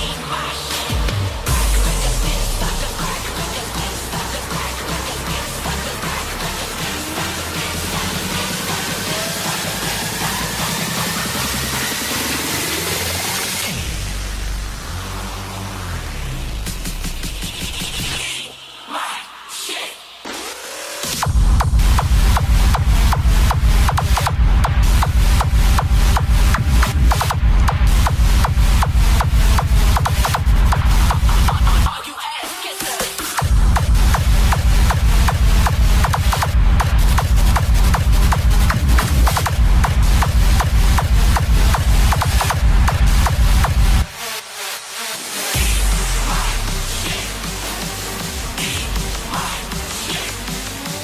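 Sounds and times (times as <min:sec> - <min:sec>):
heavy fast kick-drum beat: 0:00.0 - 0:18.4, 0:20.9 - 0:51.0
high synth stabs: 0:00.0 - 0:32.1, 0:32.8 - 0:51.0.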